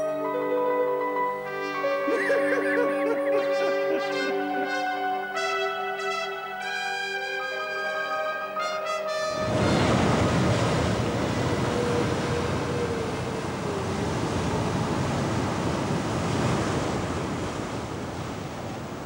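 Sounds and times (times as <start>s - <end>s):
ocean surf breaking on rocks: 9.3s - 19.0s.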